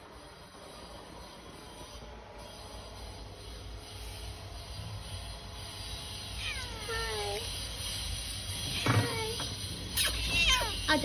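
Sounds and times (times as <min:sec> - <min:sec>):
cat meowing: 0:06.3 - 0:07.5, 0:08.7 - 0:10.9.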